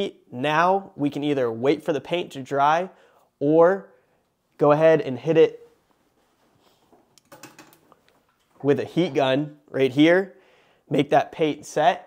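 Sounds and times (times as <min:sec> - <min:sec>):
heat gun handling clicks and rattles: 0:07.2 - 0:08.5.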